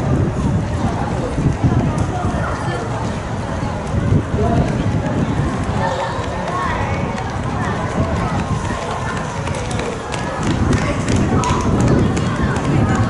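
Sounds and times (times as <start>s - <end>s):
spectators chattering: 0.0s - 13.0s.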